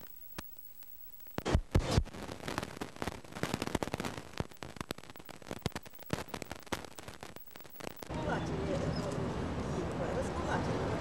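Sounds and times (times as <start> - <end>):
crackling and popping interference: 0.0 - 9.7.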